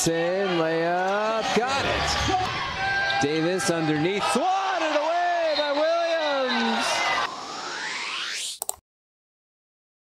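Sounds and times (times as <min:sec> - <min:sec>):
arena crowd noise: 0:00.0 - 0:07.8
rising whoosh: 0:07.1 - 0:08.6
quick clicks: 0:08.6 - 0:08.8.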